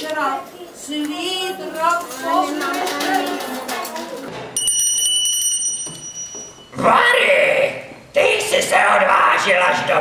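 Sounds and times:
small bell rung rapidly: 4.6s - 6.7s.

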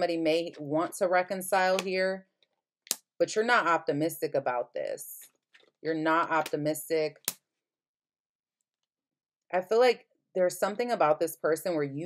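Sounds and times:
woman speaking: 0.0s - 2.2s, 3.2s - 5.2s, 5.8s - 7.2s, 9.6s - 12.0s.

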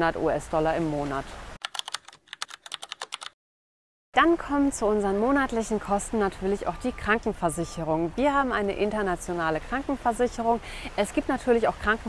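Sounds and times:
computer keyboard typing clicks: 1.6s - 3.4s.

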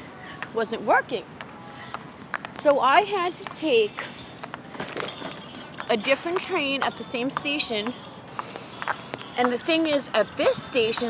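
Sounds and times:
light metallic jingling: 2.0s - 7.2s.

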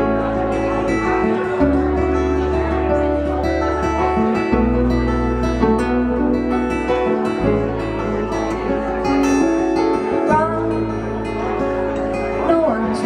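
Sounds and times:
electric bass: 0.0s - 12.9s
acoustic guitars: 0.0s - 13.0s.

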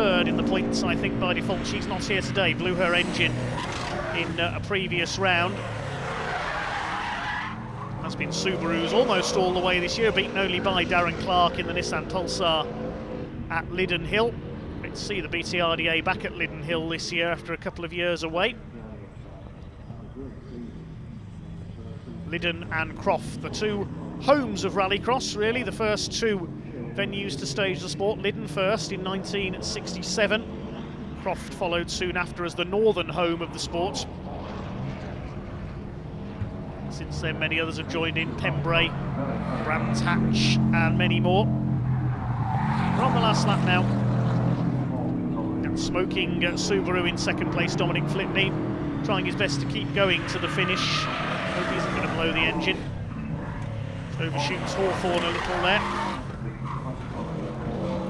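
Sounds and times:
low car engine: 0.0s - 58.0s.

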